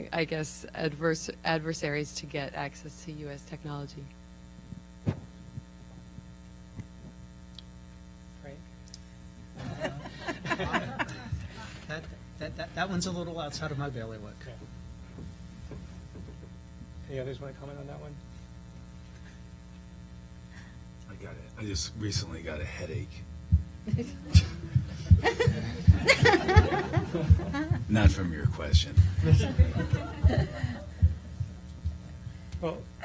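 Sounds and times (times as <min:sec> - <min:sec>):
electrical mains hum: 0:00.0 - 0:33.0.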